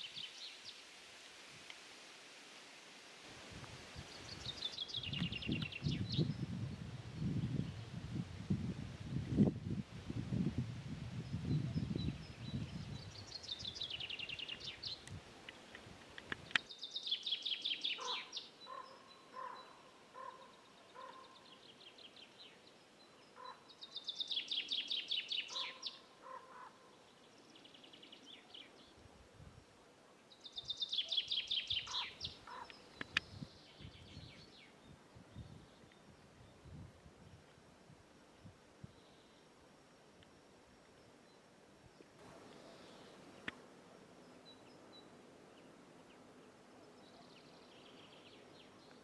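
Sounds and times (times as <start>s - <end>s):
songbird trilling: 16.7s - 21.7s, 23.3s - 26.6s, 30.5s - 34.7s.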